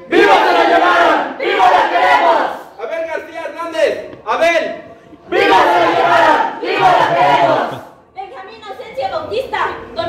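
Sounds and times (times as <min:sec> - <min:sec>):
group shouting in unison: 0:00.1 - 0:02.7, 0:05.3 - 0:07.9.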